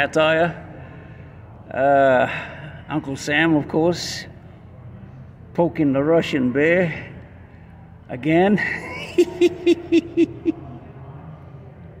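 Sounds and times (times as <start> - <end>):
man laughing: 8.6 - 10.8.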